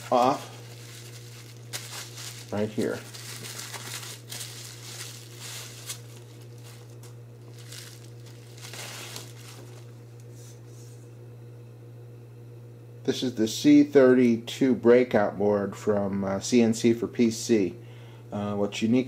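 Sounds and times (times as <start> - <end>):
bubble-wrap bag crinkling: 0.0 - 10.0
low electrical hum: 0.0 - 19.0.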